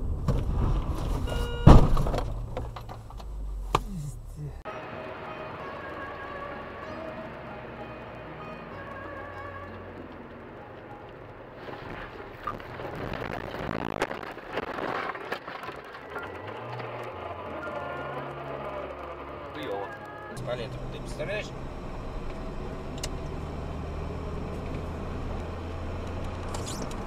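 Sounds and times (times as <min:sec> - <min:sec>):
music playing: 0:03.9 - 0:11.7.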